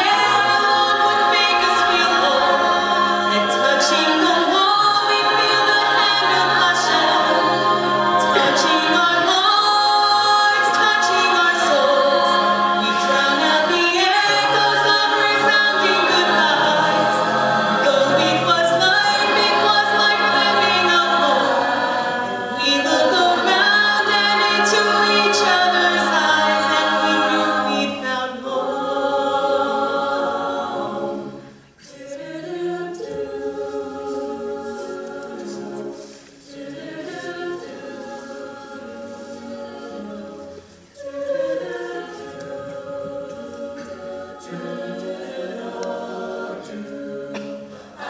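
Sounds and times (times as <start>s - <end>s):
a cappella group singing: 0.0s - 48.0s.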